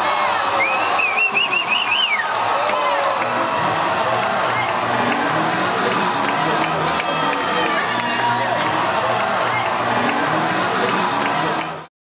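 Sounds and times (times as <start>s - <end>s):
arena crowd noise: 0.0s - 11.9s.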